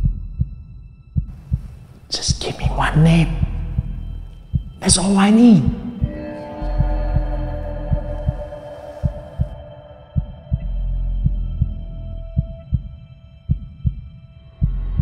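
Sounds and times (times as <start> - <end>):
low rumble: 0.0 - 13.1
heartbeat sound effect: 0.0 - 15.0
suspense drone: 0.0 - 15.0.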